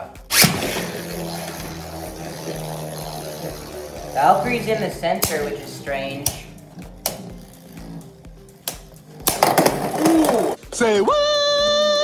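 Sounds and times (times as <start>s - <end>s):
spinning tops whirring: 0.0s - 10.7s.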